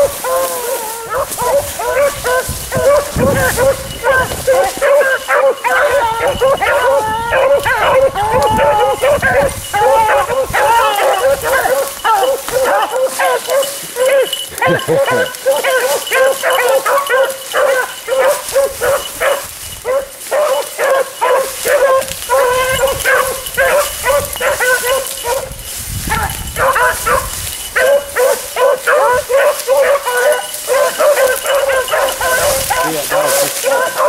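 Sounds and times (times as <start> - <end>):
beagles baying: 0.0 - 34.0.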